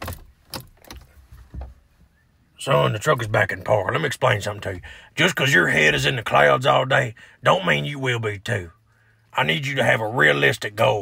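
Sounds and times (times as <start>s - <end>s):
gear shifter clicks and clunks: 0.0s - 1.8s.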